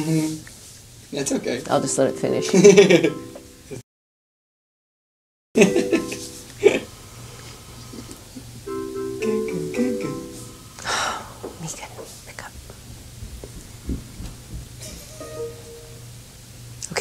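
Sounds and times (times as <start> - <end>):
faint background music: 1.2 - 3.8
woman laughing quietly: 5.6 - 7.0.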